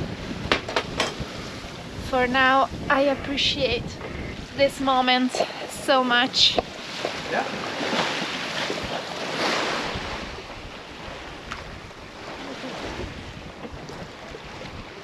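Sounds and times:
water rushing past hull: 0:00.0 - 0:15.0
wind buffeting microphone: 0:00.0 - 0:15.0.

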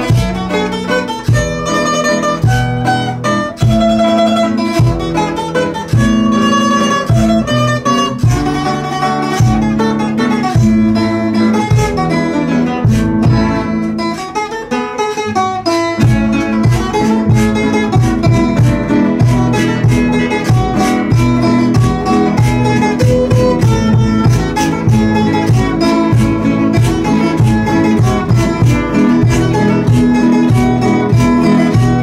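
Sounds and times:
classical guitar: 0:00.0 - 0:32.0
small plucked string instrument: 0:00.0 - 0:32.0.

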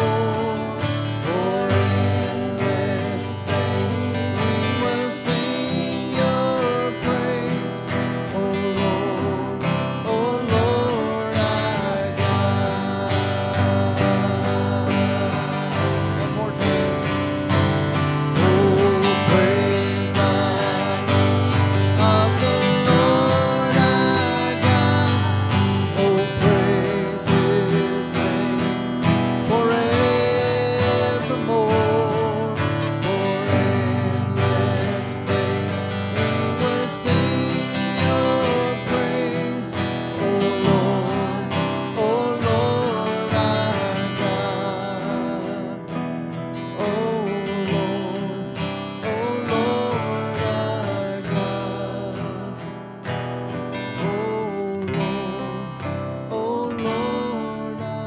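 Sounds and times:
keyboard: 0:00.0 - 0:58.0
people singing with vibrato: 0:00.0 - 0:58.0
strummed acoustic guitar: 0:00.0 - 0:58.0.

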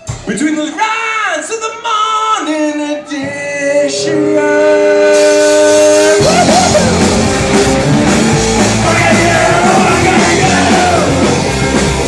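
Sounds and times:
ska punk band playing live: 0:03.2 - 0:12.0
held guitar chord ringing: 0:03.8 - 0:06.2.

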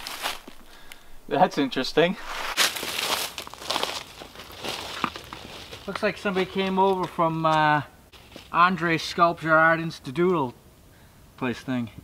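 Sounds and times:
footsteps crunching dry leaves: 0:00.0 - 0:00.7, 0:02.2 - 0:08.6.

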